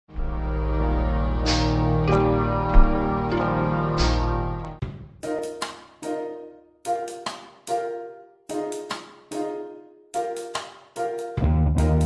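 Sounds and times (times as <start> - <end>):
keyboard chords over deep bass: 0.1 - 4.8, 11.4 - 12.0.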